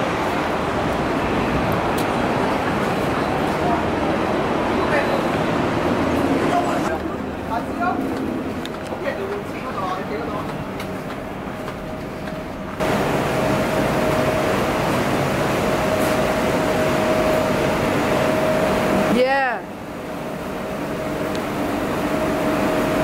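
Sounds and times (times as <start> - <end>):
ventilation units humming: 0.0 - 23.0.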